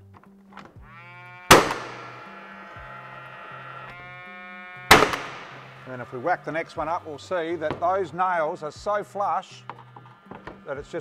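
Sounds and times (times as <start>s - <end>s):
nail gun firing: 1.5s - 2.4s, 4.9s - 5.8s.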